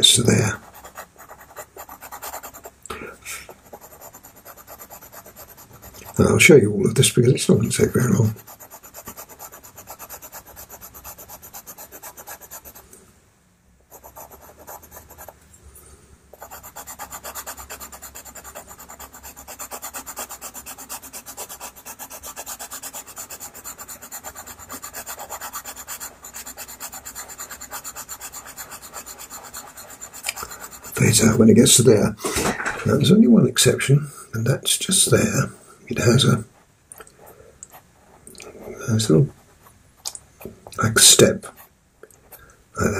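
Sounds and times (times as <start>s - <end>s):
pastel pencil scratching paper: 0.0s - 2.7s, 3.5s - 6.4s, 8.2s - 12.8s, 13.9s - 15.4s, 16.3s - 31.5s.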